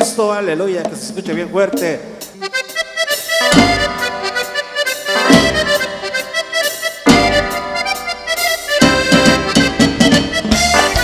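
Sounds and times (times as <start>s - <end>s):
accordion melody: 1.2s - 11.0s
deep bass notes: 3.5s - 4.4s, 5.3s - 6.2s, 7.1s - 11.0s.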